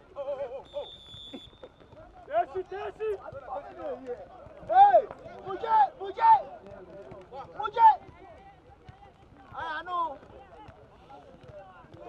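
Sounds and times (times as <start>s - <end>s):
faint high-pitched whistle: 0.6s - 2.0s
players shouting: 2.0s - 6.7s, 7.3s - 8.7s.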